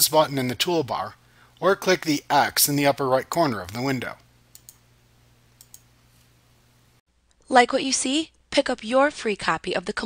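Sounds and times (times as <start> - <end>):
low steady hum: 0.0 - 7.5
computer mouse clicks: 4.5 - 4.8, 5.6 - 5.9.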